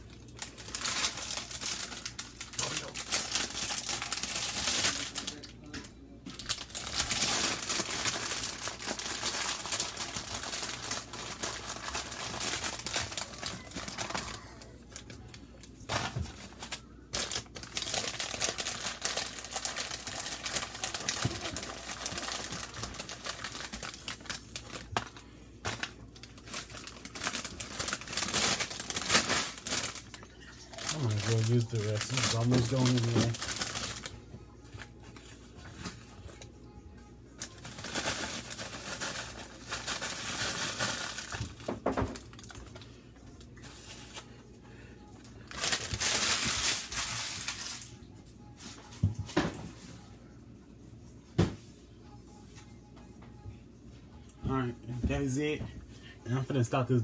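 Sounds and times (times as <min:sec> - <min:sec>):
plastic bag crinkling: 0:00.0 - 0:05.7, 0:06.3 - 0:34.2, 0:37.4 - 0:44.4, 0:45.3 - 0:48.0.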